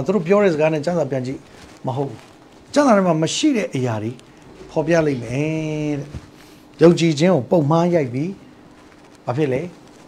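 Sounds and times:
man preaching: 0.0s - 8.4s.

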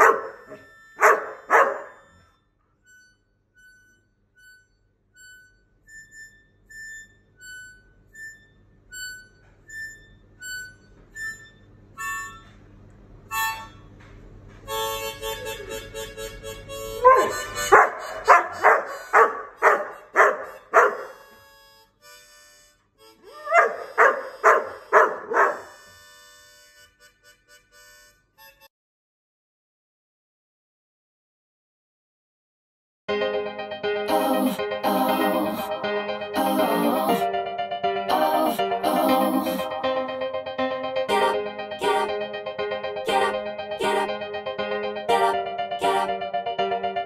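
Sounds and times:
dog barking: 0.0s - 2.1s, 17.0s - 21.2s, 23.5s - 25.8s
dog whining: 0.0s - 2.3s, 17.0s - 21.4s, 23.3s - 25.8s
harmonica playing high notes: 0.0s - 12.6s, 13.3s - 13.9s, 14.7s - 28.7s, 33.2s - 47.0s
music: 2.9s - 12.6s, 13.3s - 13.8s, 14.7s - 28.7s, 33.1s - 47.0s.

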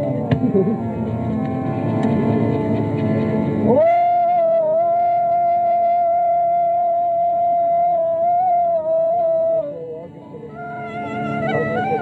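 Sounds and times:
person singing sustained note: 3.6s - 12.0s.

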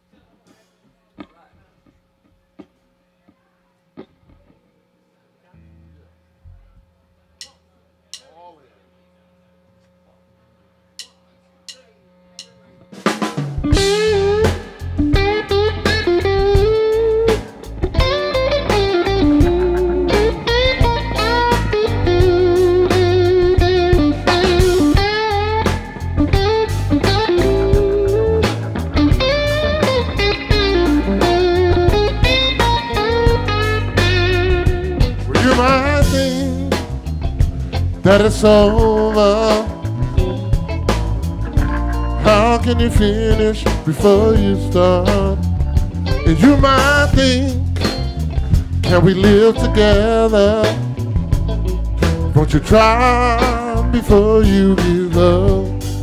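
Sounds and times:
live blues band playing: 13.0s - 56.0s.

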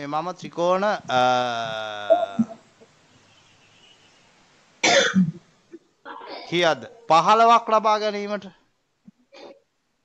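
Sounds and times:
man coughing: 4.8s - 5.3s.

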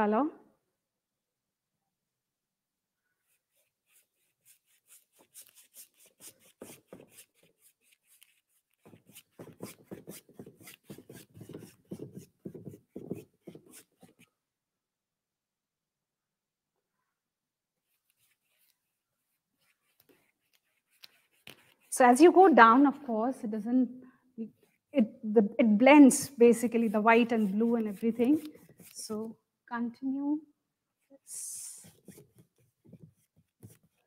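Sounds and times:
paintbrush strokes on canvas: 3.2s - 14.3s, 17.8s - 22.4s, 26.0s - 29.3s, 31.2s - 34.0s.

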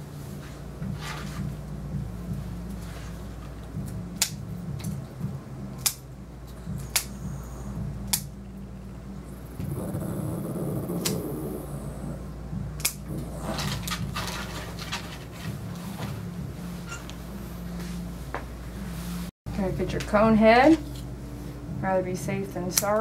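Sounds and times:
steady low hum: 0.0s - 23.0s
grooming scissors snipping: 5.8s - 6.0s, 6.7s - 7.4s, 8.0s - 8.4s, 9.6s - 11.8s, 12.8s - 14.0s.

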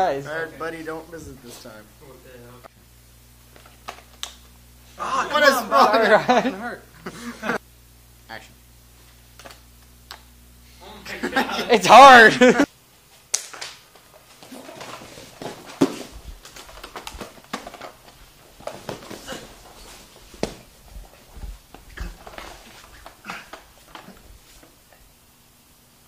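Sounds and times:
bodies thudding on a mat: 14.4s - 24.6s
grunts and strained breathing: 19.0s - 19.8s, 21.9s - 24.3s.

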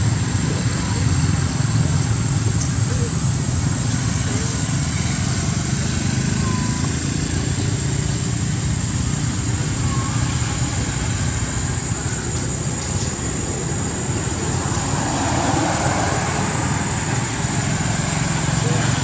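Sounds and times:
thin high-pitched whine: 0.4s - 19.0s.

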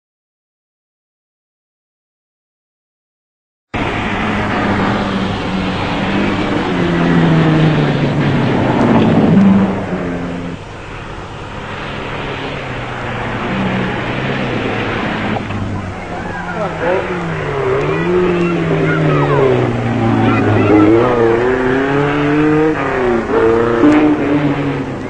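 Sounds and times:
rally car engines running hard: 3.8s - 25.0s.

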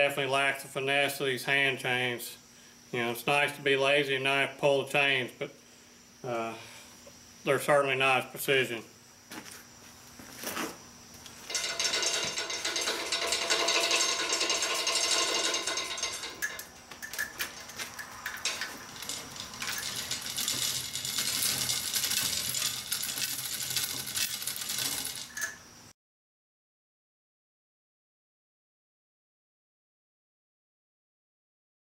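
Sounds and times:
chain clinks: 11.5s - 25.6s
hoist chain rattling and clicking: 11.5s - 25.6s.

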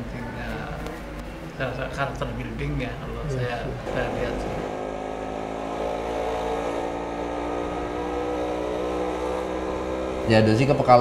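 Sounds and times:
motorbike engine running: 3.8s - 11.0s.

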